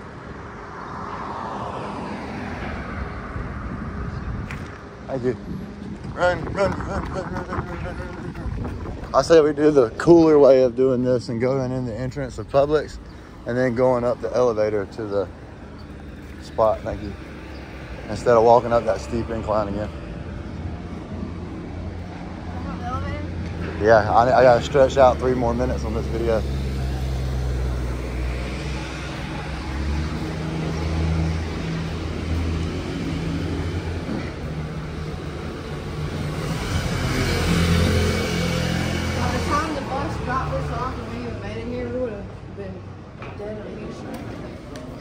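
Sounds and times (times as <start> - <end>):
street traffic rumble: 0.0 - 45.0
vehicle passing: 0.0 - 45.0.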